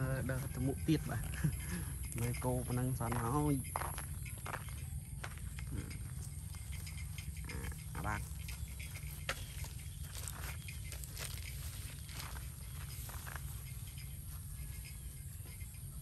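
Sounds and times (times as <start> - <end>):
person speaking: 0.0 - 3.8, 7.5 - 8.4
rustling steps in grass: 9.1 - 13.5.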